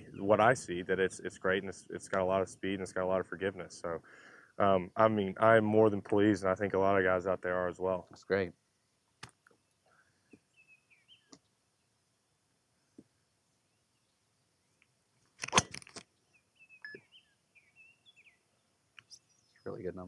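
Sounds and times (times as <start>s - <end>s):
birds chirping faintly: 0.0s - 15.4s, 16.0s - 20.0s.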